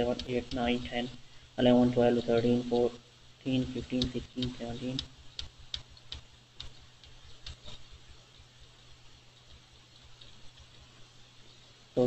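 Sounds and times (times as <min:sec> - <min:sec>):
keyboard clicks: 0:00.0 - 0:00.9, 0:03.8 - 0:08.0.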